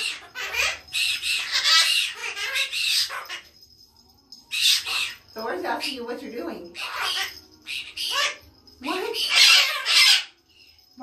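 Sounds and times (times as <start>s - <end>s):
parrot squawking: 0.0s - 3.6s, 4.5s - 10.4s.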